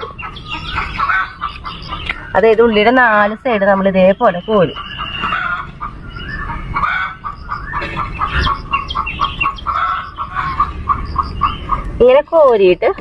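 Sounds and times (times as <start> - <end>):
hens clucking: 0.0 - 13.0.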